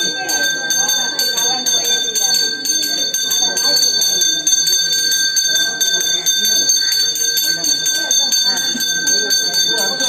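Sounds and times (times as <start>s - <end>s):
temple bell ringing rapidly: 0.0s - 10.0s
voices: 0.0s - 10.0s.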